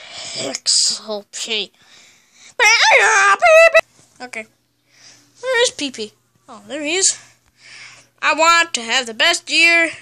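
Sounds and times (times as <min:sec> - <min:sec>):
child wailing: 0:02.6 - 0:03.8.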